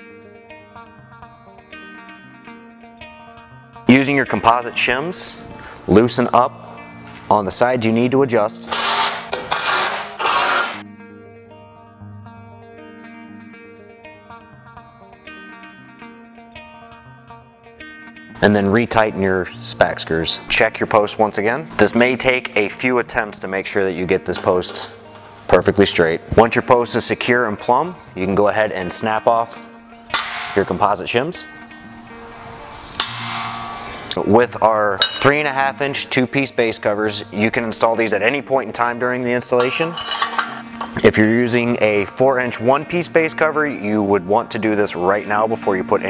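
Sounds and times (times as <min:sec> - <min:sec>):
plucked guitar music with bass: 0:00.0 - 0:08.7, 0:10.8 - 0:46.0
impact driver running: 0:08.7 - 0:10.8.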